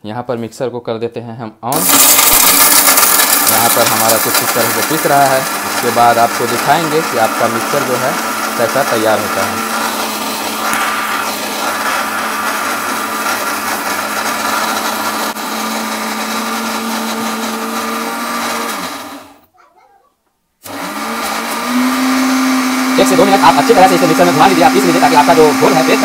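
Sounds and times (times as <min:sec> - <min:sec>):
mixer grinder motor whine: 0:01.7 - 0:19.4, 0:20.6 - 0:26.0.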